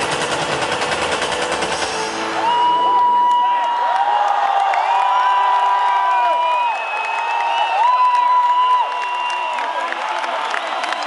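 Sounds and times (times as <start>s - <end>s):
stadium crowd cheering: 0.0s - 11.0s
long whoops and shouts: 2.4s - 11.0s.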